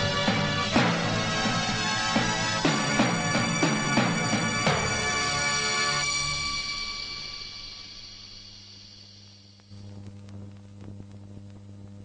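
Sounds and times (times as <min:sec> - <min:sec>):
electrical mains hum: 0:06.8 - 0:12.0
faint clicks: 0:09.6 - 0:12.0.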